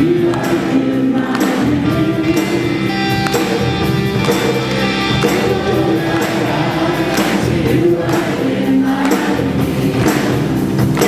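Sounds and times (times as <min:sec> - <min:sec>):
drums: 0:00.0 - 0:11.0
voices singing together: 0:00.0 - 0:11.0.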